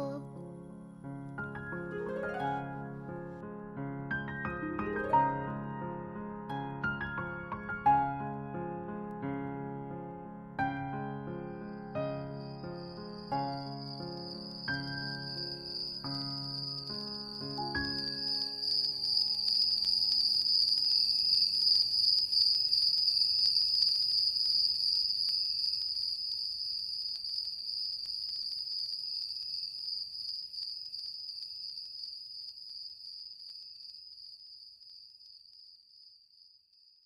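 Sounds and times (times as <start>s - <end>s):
music: 0.0s - 20.4s.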